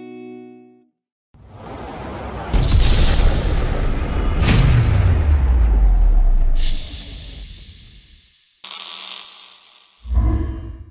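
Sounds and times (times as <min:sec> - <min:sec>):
sudden hissing burst: 0:06.6 - 0:10.0.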